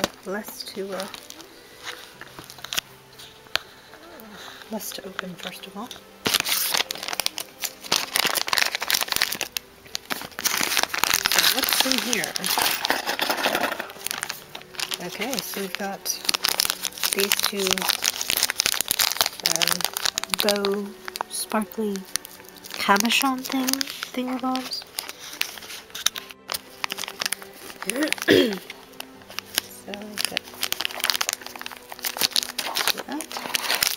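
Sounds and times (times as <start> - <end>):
plastic bag crinkling: 0.0 - 33.9
person clearing throat: 27.9 - 28.7.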